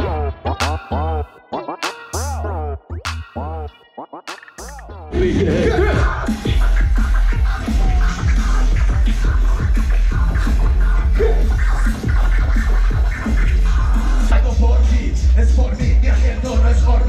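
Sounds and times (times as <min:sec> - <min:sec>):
hip-hop music with heavy bass: 0:00.0 - 0:17.0
turntable scratching: 0:00.0 - 0:17.0.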